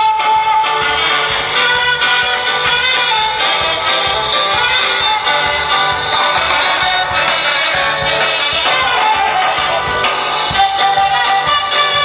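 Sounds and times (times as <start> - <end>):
band playing carnival dance music: 0.0 - 12.0.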